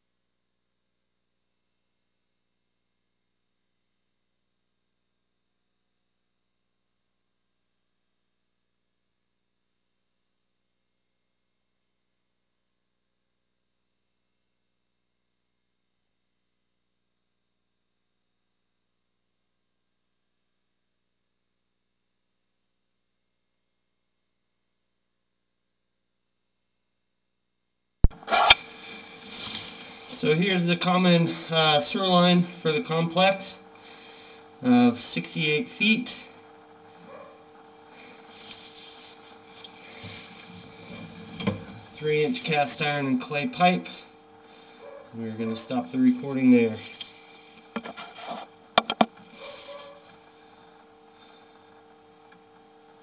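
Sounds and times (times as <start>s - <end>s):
microphone handling rustle: 28.0s - 30.1s, 46.8s - 50.0s
faint electrical hum: 28.0s - 53.0s
handling knocks on device: 47.7s - 48.0s, 48.8s - 49.2s
microphone clicks: 47.7s - 49.4s
sharp button clicks: 48.8s - 49.1s.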